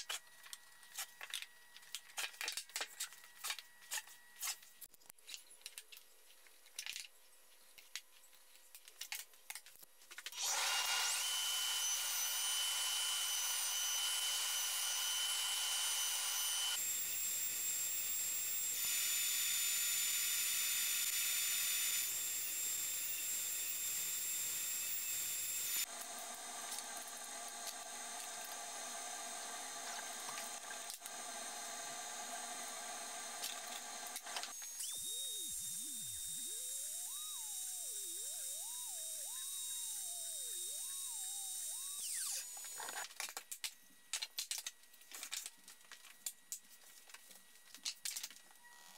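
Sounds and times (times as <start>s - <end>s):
wood router whining: 10.4s - 43.1s.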